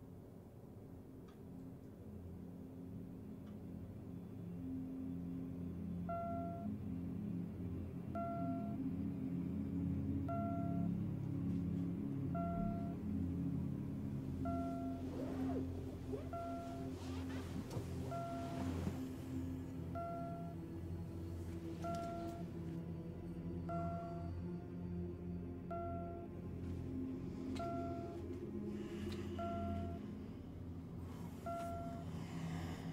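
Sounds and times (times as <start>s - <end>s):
low droning music: 0.0s - 32.9s
bedclothes rustling: 14.6s - 19.8s.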